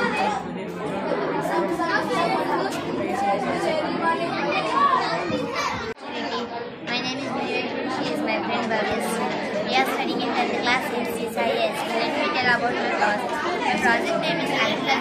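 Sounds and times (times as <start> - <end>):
children chattering: 0.0 - 15.0.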